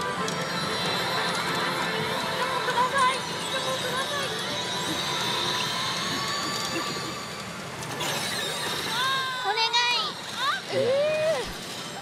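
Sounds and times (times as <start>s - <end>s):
pachinko machine high tones: 0.0s - 10.8s
pachinko parlor din: 0.0s - 10.8s.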